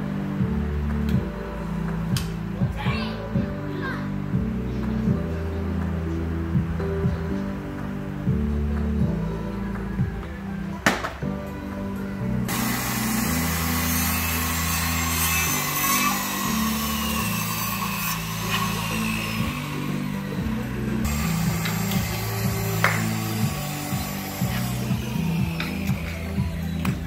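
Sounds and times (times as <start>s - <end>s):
background music with bass line: 0.0s - 27.0s
circular saw cutting wood: 12.5s - 27.0s.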